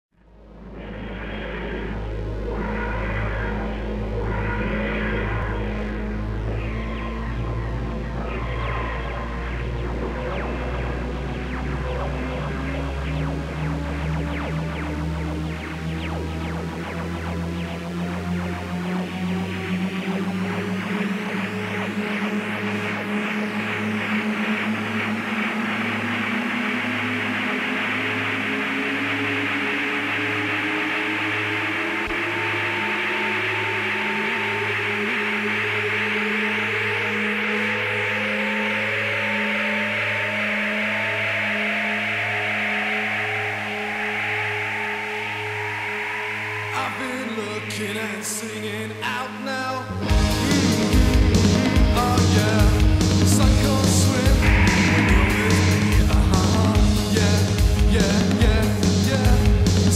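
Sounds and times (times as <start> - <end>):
pulsing low note: 0.2 - 48.2, 50.1 - 59.9
rising electronic tone: 0.2 - 49.2, 49.9 - 59.9
instrumental rock intro: 0.4 - 48.6, 49.9 - 59.9.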